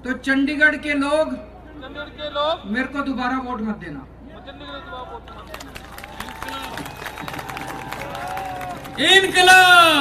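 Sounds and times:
crowd clapping: 5.4 - 10.0.

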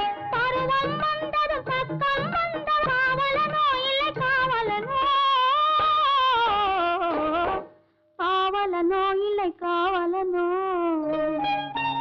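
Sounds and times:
woman singing ornamented melody: 8.2 - 12.0.

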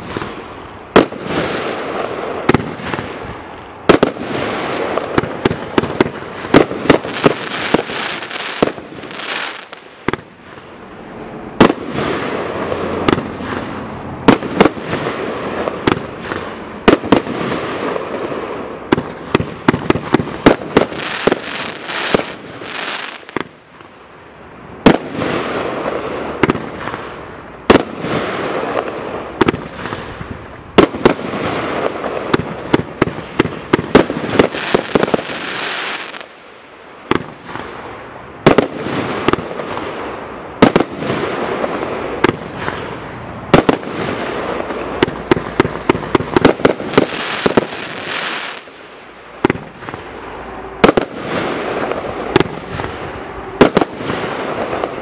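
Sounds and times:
firework bangs: 0.0 - 23.9, 24.8 - 36.4, 37.0 - 55.0.

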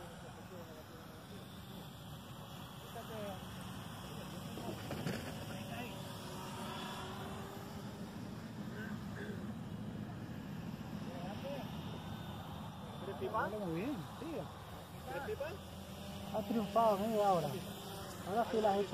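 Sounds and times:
model plane motor humming: 0.0 - 18.9.

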